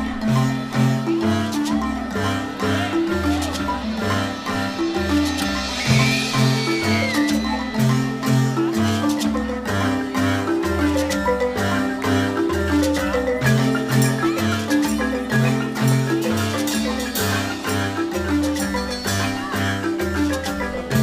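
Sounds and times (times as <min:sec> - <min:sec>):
deep bass marimba notes: 0:00.0 - 0:21.0
marimba ensemble playing: 0:00.0 - 0:21.0.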